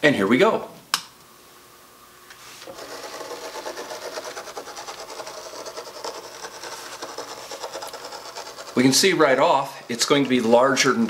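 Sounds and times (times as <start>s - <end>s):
steel ball rasping through sand: 2.6s - 10.2s
gear drive running: 2.6s - 11.0s.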